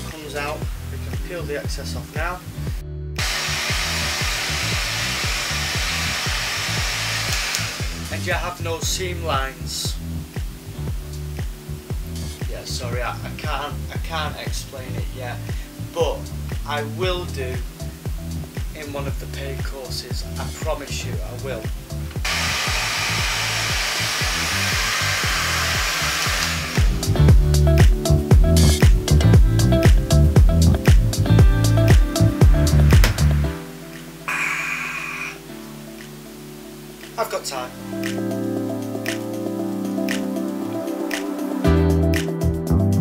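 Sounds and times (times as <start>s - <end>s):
background music with steady beat: 0.0s - 43.0s
hair dryer blowing: 3.2s - 8.2s, 22.2s - 27.1s.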